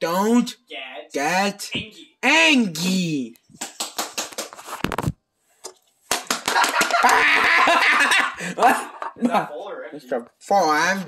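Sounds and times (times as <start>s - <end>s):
person laughing shrilly: 6.6s - 8.9s.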